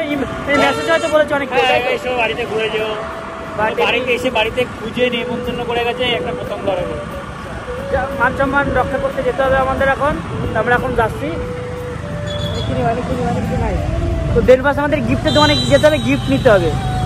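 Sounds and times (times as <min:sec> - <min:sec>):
motorbike road noise: 0:00.0 - 0:17.0
voices talking: 0:00.0 - 0:17.0.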